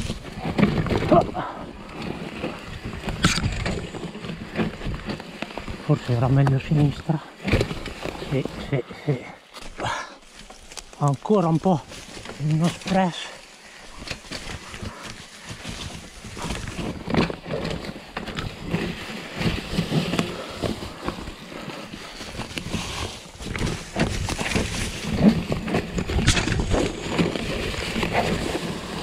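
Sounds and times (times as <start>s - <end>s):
bike rattling and knocking: 0.0s - 29.0s
tyres over stones and leaves: 0.0s - 29.0s.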